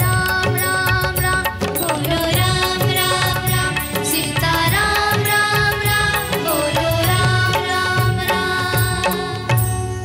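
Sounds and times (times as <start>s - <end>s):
instrumental backing with beat: 0.0s - 10.0s
person singing: 0.0s - 10.0s.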